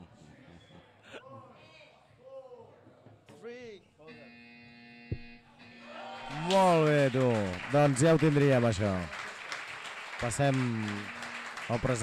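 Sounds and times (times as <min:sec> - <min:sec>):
electrical buzz: 0:04.1 - 0:07.0, 0:10.5 - 0:12.0
sharp knock: 0:05.1 - 0:05.4.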